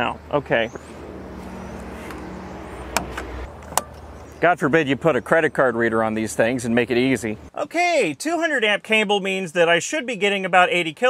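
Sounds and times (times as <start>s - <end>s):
steady low hum: 0.2s - 4.4s.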